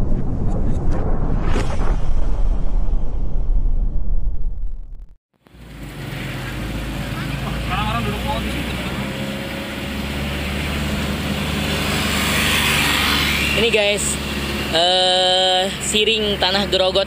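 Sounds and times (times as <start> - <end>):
truck engine hum: 5.4 - 17.0.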